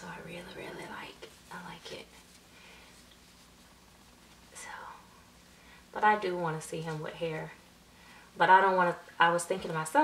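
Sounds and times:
woman whispering: 4.5 - 5.2.

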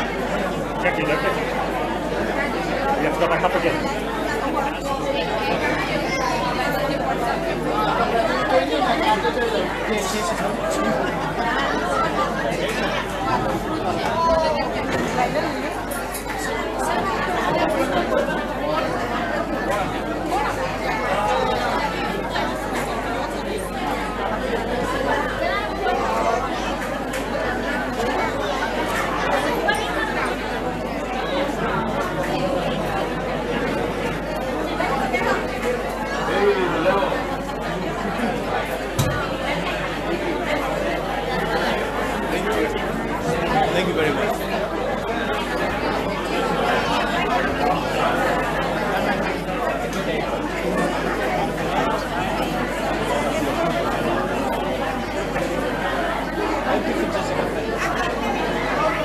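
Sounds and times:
crowd chatter in a hall: 0.0 - 59.0.

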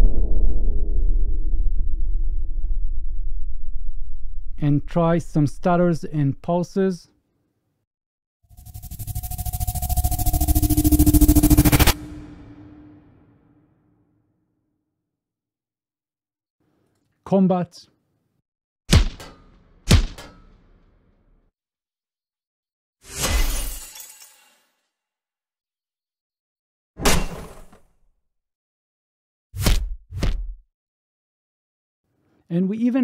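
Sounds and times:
deep low boom: 0.0 - 5.0
low synth hum: 0.0 - 5.6, 8.5 - 13.4
pulsing synthetic riser: 8.5 - 13.3
glass shattering crash: 23.1 - 24.8.

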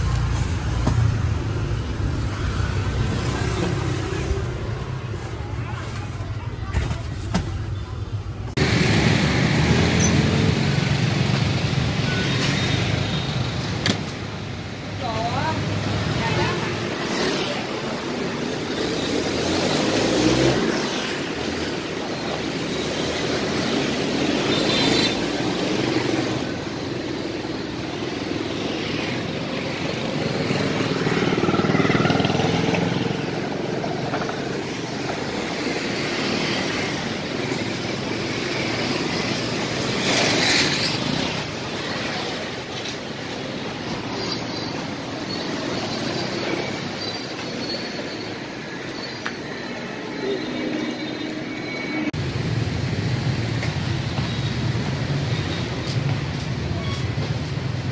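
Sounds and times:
motorbikes passing: 0.0 - 6.5, 8.5 - 50.9
city bus passing: 0.0 - 57.9.

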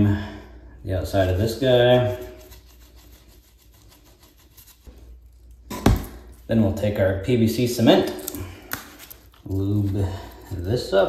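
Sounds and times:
dauber rubbing on plastic pipe: 1.2 - 4.9.

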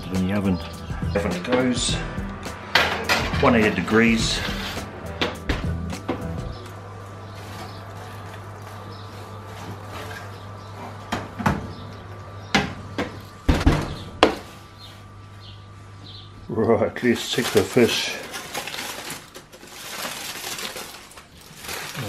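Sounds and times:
steady low hum: 0.0 - 19.2.

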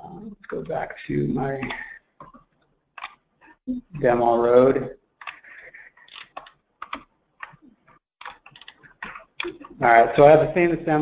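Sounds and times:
computer keyboard typing: 3.0 - 4.1, 5.2 - 9.8.

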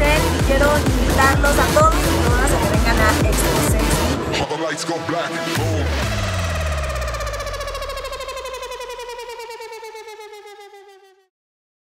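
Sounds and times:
pulsing synthesizer tone sliding down: 5.3 - 11.4
low gliding bass note: 5.6 - 11.3.

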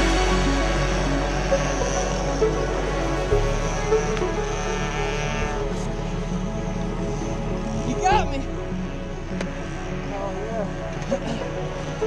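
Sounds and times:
electronic music with bass line: 0.0 - 12.0.

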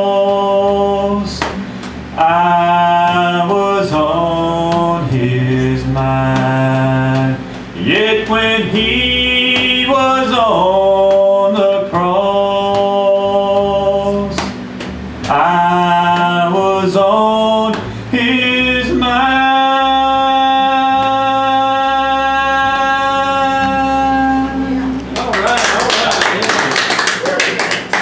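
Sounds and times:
man singing: 0.0 - 14.6, 15.2 - 25.0
guitar and bass accompaniment: 0.0 - 26.2
audience applause: 25.2 - 28.0.

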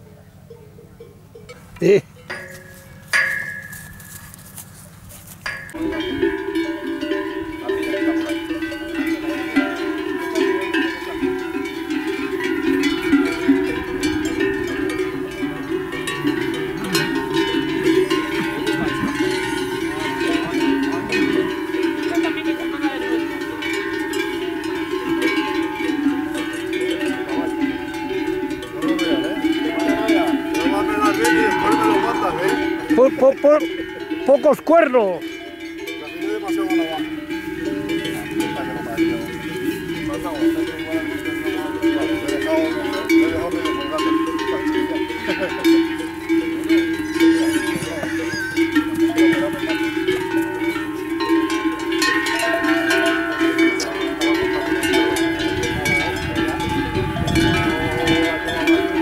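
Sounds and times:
livestock bells clanging: 0.0 - 59.0.

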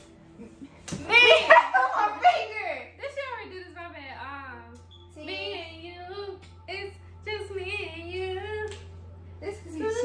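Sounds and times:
woman singing unaccompanied: 3.6 - 8.8, 9.4 - 10.0.

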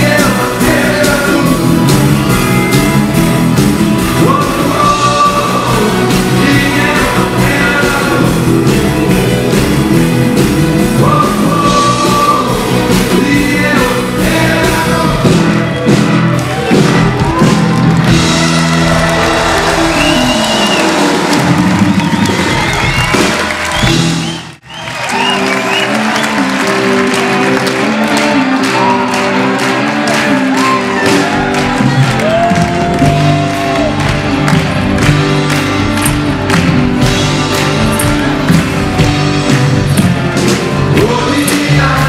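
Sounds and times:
live rock band playing: 0.0 - 42.0
crowd cheering: 15.0 - 42.0.

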